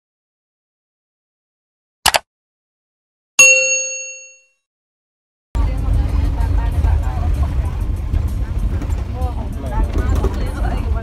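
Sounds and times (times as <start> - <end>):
bright bell ding: 3.4 - 4.6
bus rumble: 5.6 - 11.0.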